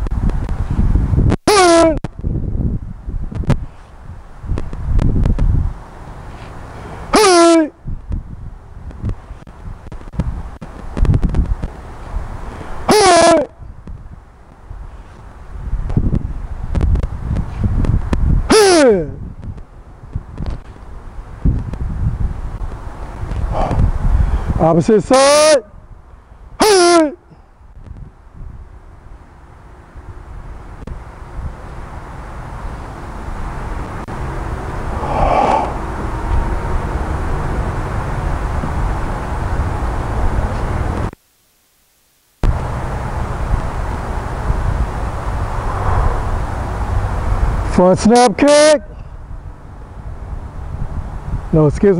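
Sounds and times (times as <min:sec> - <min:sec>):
wind rumble on microphone: 0:00.0 - 0:41.2, 0:42.4 - 0:51.9
outdoor background rush: 0:00.0 - 0:51.9
man shouting: 0:01.5 - 0:02.0, 0:07.1 - 0:07.8, 0:12.9 - 0:13.6, 0:18.5 - 0:19.2, 0:24.7 - 0:25.7, 0:26.6 - 0:27.3, 0:47.7 - 0:49.0
low rumble: 0:42.4 - 0:47.8.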